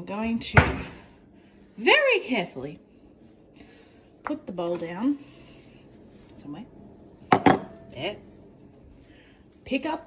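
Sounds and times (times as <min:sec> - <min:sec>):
bowl knocking on countertop: 0:07.3 - 0:07.8.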